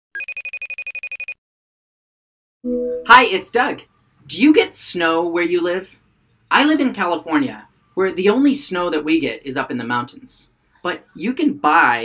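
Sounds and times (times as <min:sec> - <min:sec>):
phone ringtone trill of beeps: 0:00.2 - 0:01.4.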